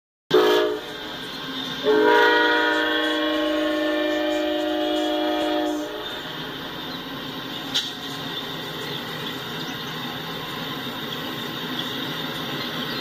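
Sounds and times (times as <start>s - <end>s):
locomotive air horn blasts: 0.3s - 1.0s, 1.8s - 6.2s.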